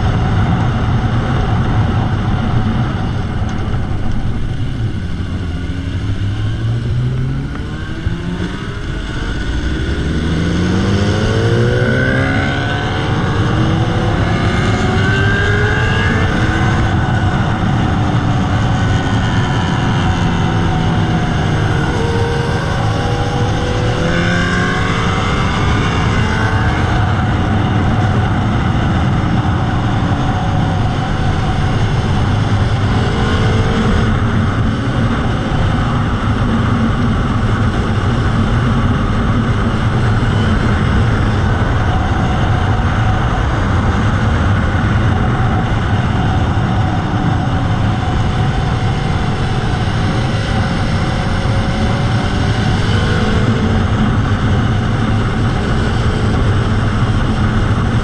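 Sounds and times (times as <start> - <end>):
motorcycle engine accelerating: 0.0 - 58.0
wind and road noise: 0.0 - 58.0.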